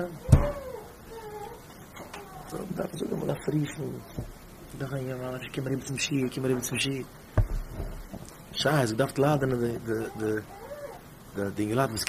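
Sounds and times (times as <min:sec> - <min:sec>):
man speaking: 0:02.5 - 0:04.1, 0:04.7 - 0:07.1, 0:08.5 - 0:10.5, 0:11.4 - 0:12.0.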